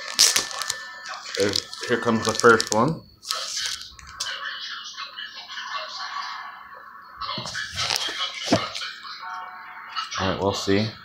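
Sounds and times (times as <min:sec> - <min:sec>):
wrapper crackling: 0:00.0 - 0:04.1, 0:07.5 - 0:08.8
television music: 0:00.0 - 0:11.0
cards being handled: 0:07.4 - 0:08.8.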